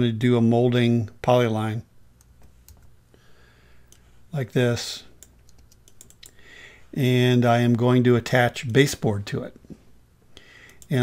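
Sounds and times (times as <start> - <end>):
mouse and keyboard clicks: 5.2 - 6.3.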